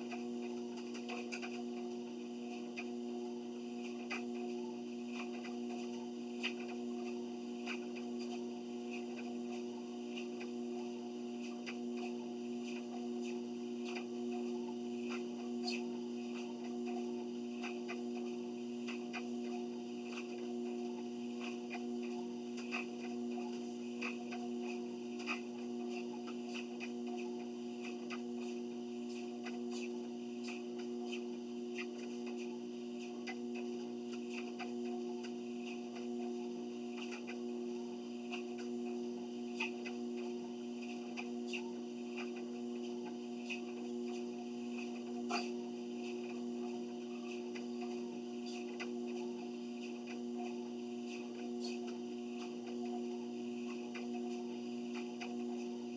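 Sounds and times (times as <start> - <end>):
faint irregular ticks: 0.0 - 55.9
treadmill motor hum: 0.0 - 55.9.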